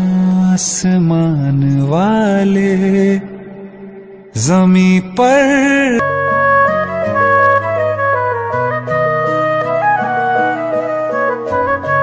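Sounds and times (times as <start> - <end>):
soft musical accompaniment: 4.3 - 12.0.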